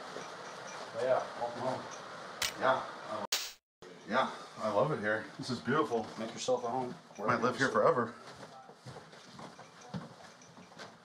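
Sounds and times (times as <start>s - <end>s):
faint footsteps: 5.6s - 11.0s.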